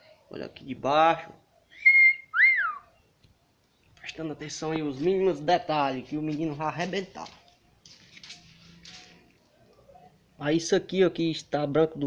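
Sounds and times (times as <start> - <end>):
whistled notes: 1.7 - 3.0.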